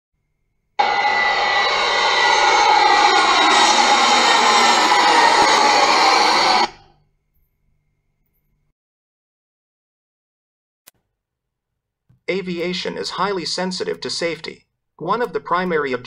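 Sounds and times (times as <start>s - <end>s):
jet airliner passing overhead: 0.8s - 6.8s.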